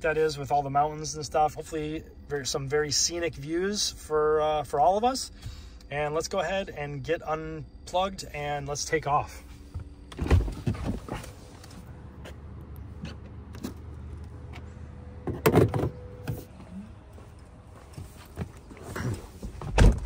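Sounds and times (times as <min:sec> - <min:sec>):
car door shutting: 0:09.7 - 0:11.8, 0:14.5 - 0:16.6, 0:18.4 - 0:20.0
car door opening thump: 0:19.5 - 0:20.0.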